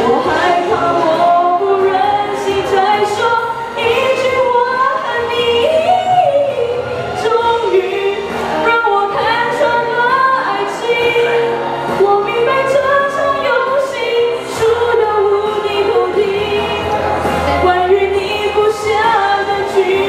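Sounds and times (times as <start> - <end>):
backing music: 0.0 - 20.0
girl singing into microphone: 0.0 - 20.0.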